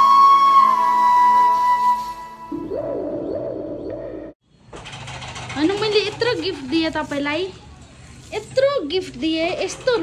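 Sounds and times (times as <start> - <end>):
steady rapid rattle: 4.6 - 7.6, 9.3 - 10.0.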